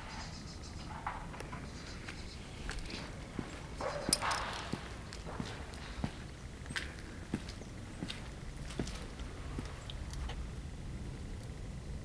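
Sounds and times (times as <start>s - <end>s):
footsteps on brick paving: 2.1s - 10.4s.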